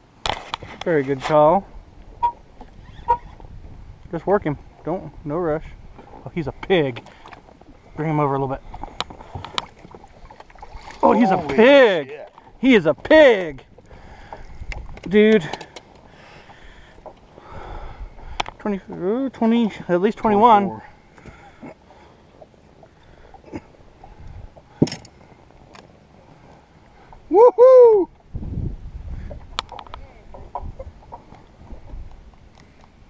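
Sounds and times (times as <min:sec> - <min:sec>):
knocks and clatters on boat deck: 0:24.8 - 0:25.2.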